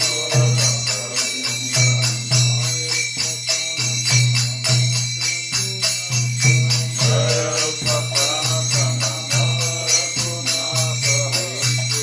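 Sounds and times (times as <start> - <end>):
hand cymbals struck: 0.0 - 12.0
man singing a chant: 0.0 - 12.0.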